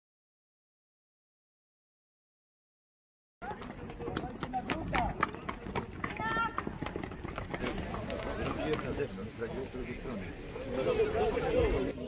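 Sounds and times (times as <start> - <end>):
people talking: 3.4 - 6.8, 7.6 - 12.0
hooves and tack clicking: 3.4 - 9.4.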